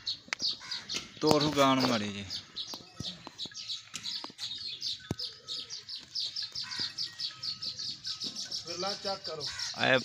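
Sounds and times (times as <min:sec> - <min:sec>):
small birds chirping: 0:00.0 - 0:10.0.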